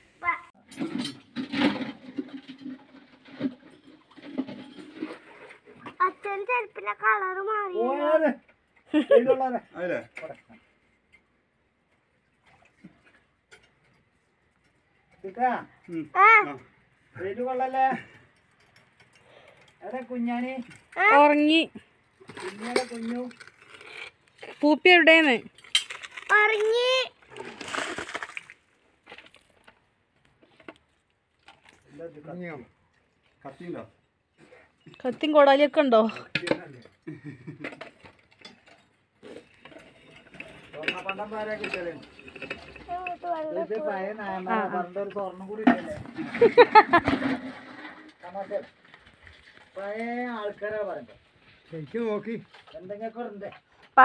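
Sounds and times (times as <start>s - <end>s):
rope clicking and creaking over pulley: 17.6s - 24.8s.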